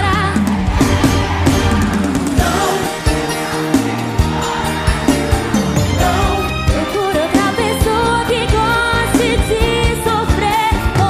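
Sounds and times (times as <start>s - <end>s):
steady drum beat: 0.0s - 10.2s
band playing: 0.0s - 11.0s
woman singing with vibrato: 5.9s - 11.0s.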